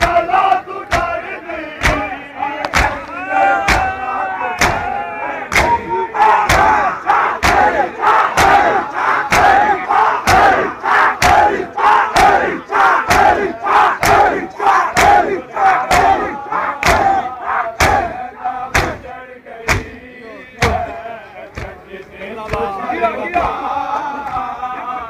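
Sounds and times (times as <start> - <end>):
men beating chests in unison: 0.0 - 21.8, 22.4 - 24.7
many voices chanting: 0.0 - 25.0.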